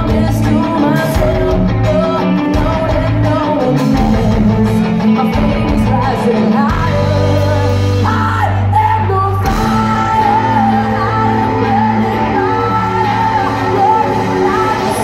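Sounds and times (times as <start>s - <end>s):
live hard rock band: 0.0s - 15.0s.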